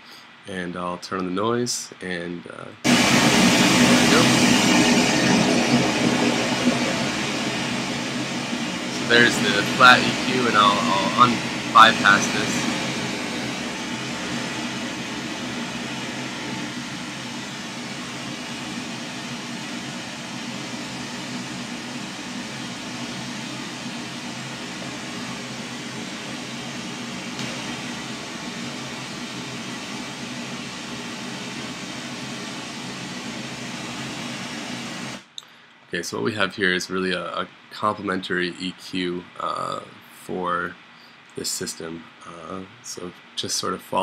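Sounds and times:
pink noise hiss: 0.0s - 44.0s.

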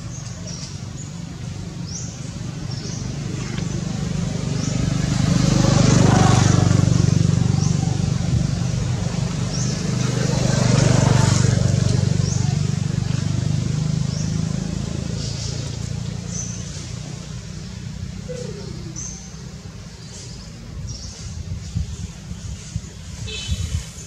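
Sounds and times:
low engine hum: 0.0s - 24.0s
motor vehicles passing: 0.0s - 24.0s.

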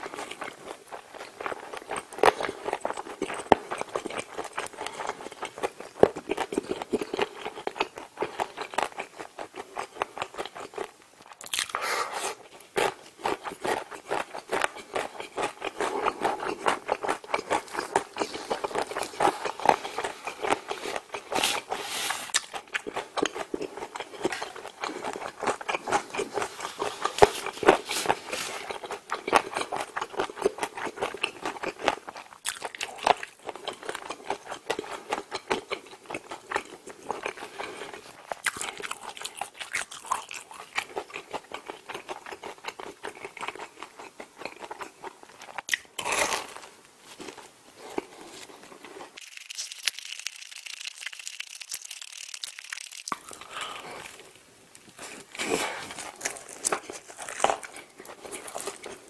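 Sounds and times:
person chewing food: 0.0s - 59.0s.

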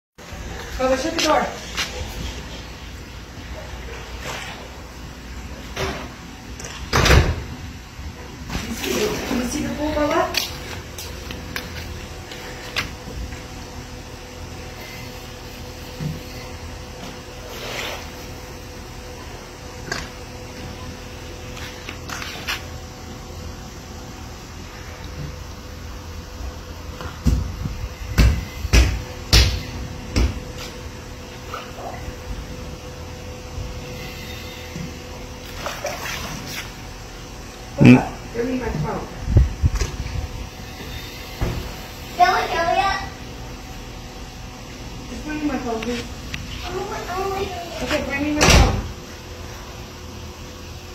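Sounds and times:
steady hum: 0.2s - 50.9s
pool water sloshing: 8.4s - 12.9s, 35.1s - 37.8s.

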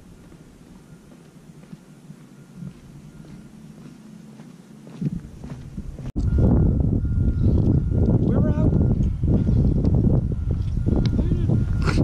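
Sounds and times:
footsteps on paved path: 0.0s - 12.0s
wind buffeting microphone: 4.8s - 12.0s
low rumble: 5.0s - 12.0s.

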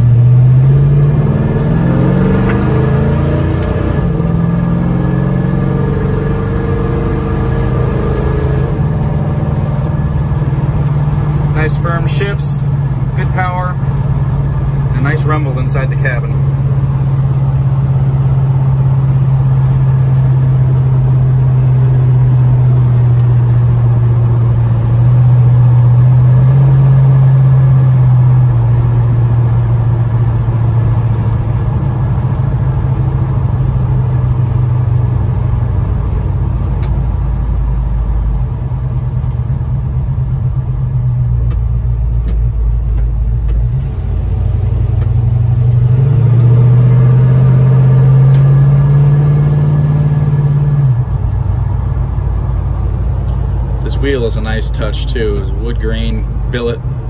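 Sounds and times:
truck engine and exhaust rumbling: 0.0s - 57.0s.

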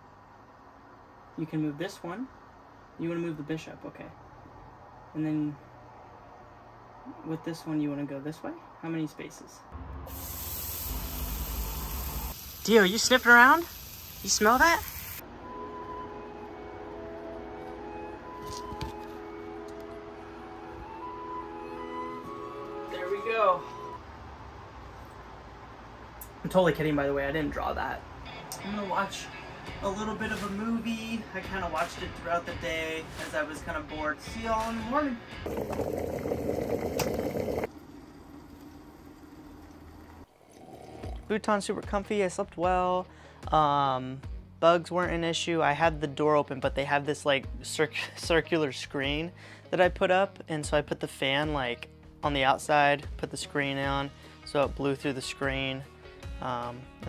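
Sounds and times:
electric kettle boiling: 10.1s - 15.2s, 35.5s - 41.3s
steak sizzling in a skillet: 10.1s - 15.2s.

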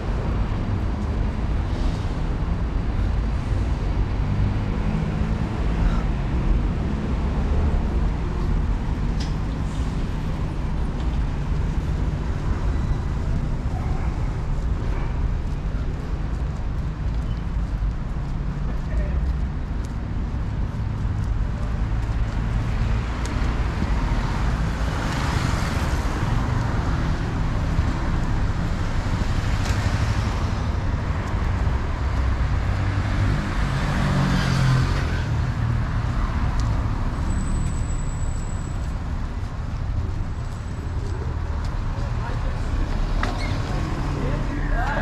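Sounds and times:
traffic rumble: 0.0s - 45.0s
vehicles passing close by: 0.0s - 45.0s.

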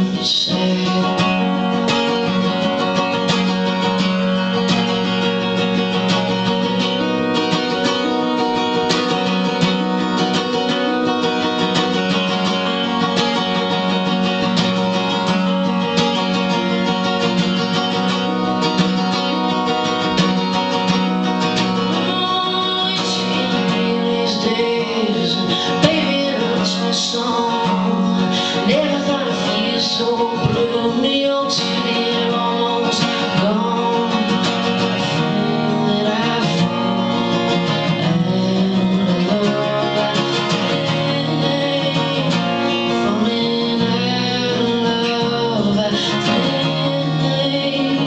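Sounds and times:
acoustic guitar strumming: 0.0s - 48.0s
person singing: 0.0s - 48.0s.

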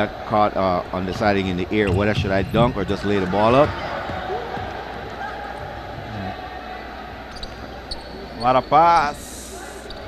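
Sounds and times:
indoor hall hum: 0.0s - 10.0s
faint voices: 2.3s - 10.0s
shoe squeaks: 7.3s - 8.9s.

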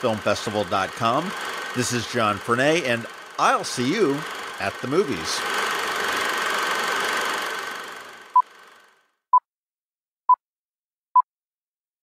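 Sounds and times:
noisy sound bed: 0.0s - 9.0s.

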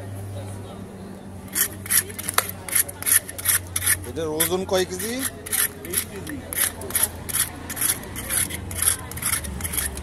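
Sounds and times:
scaler scraping fish scales: 1.5s - 10.0s.

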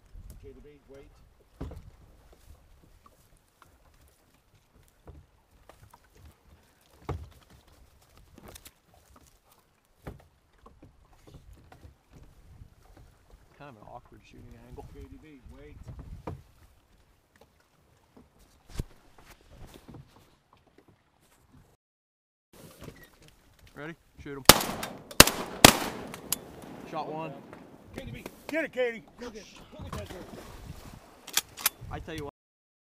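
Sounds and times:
shotgun shots: 24.5s - 28.0s.

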